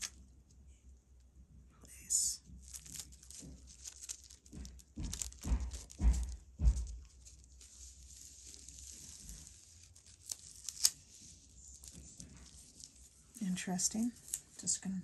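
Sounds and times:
dull thumps: 0:02.5 - 0:09.9
tissue paper tearing and crinkling: 0:02.6 - 0:14.6.

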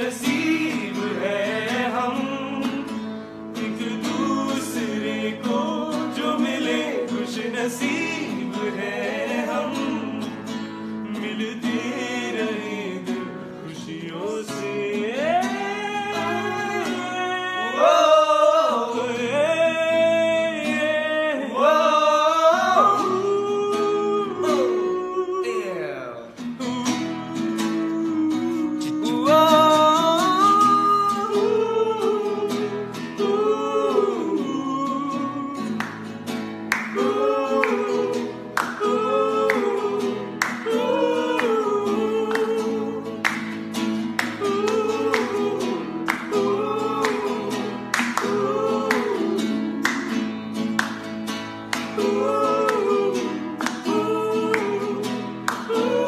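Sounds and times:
men singing together: 0:00.0 - 0:25.5, 0:26.5 - 0:51.0, 0:51.7 - 0:56.0
strummed classical guitar: 0:00.0 - 0:56.0.

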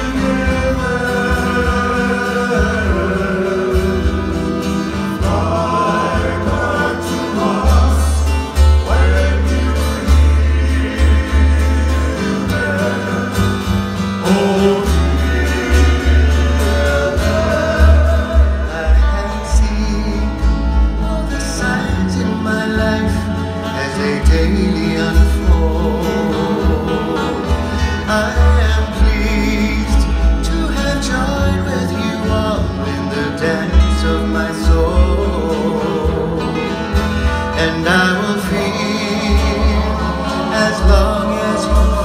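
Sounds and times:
men singing together: 0:00.0 - 0:42.0
strummed strings: 0:00.0 - 0:42.0
upright bass line: 0:00.0 - 0:42.0.

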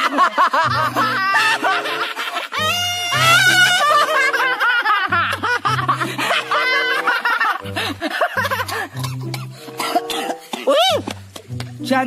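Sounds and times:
background music with low note: 0:00.6 - 0:12.0
man coughing and choking: 0:08.4 - 0:11.6.

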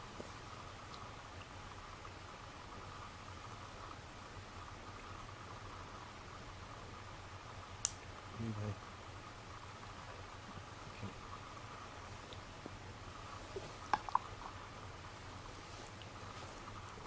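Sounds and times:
background hiss: 0:00.0 - 0:17.0.

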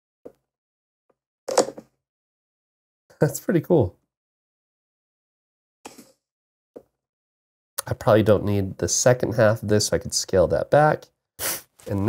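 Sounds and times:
bag crackling rustle: 0:11.7 - 0:12.0.

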